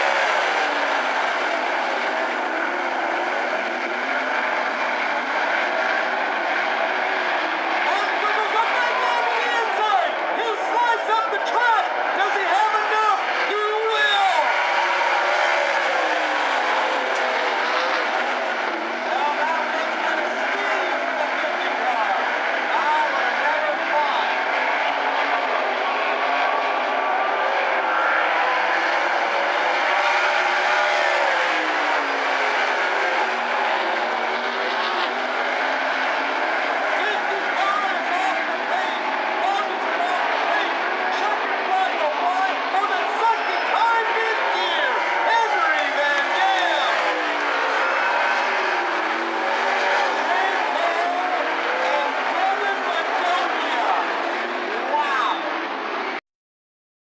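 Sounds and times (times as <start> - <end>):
racing car engines passing: 0.0 - 56.2.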